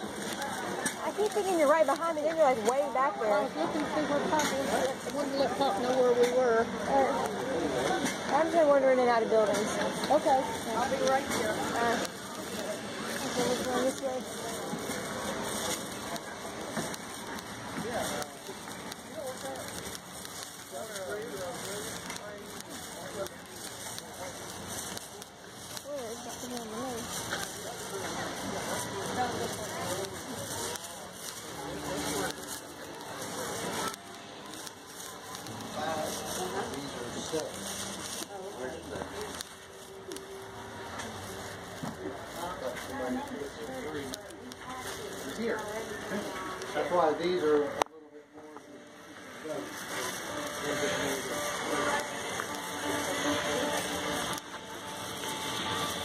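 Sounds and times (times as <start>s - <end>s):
people chattering: 0.0s - 56.0s
steady crackling noise: 0.0s - 56.0s.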